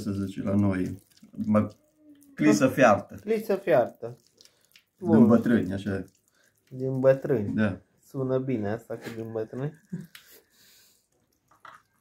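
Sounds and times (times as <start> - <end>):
wet squishing of hands rubbing: 0.0 - 8.2, 8.8 - 12.0.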